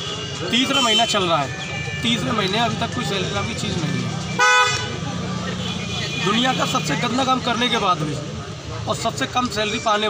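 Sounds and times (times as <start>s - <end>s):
vehicle horn blast: 4.4s - 5.0s.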